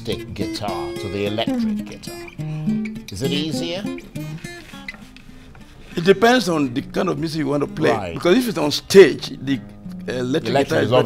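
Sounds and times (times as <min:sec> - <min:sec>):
acoustic guitar plucked softly: 0:00.0 - 0:11.0.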